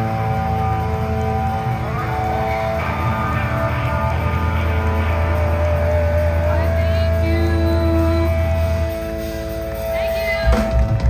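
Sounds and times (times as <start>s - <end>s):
drums: 0.0s - 11.0s
electric bass: 0.0s - 11.0s
electric guitar: 0.0s - 11.0s.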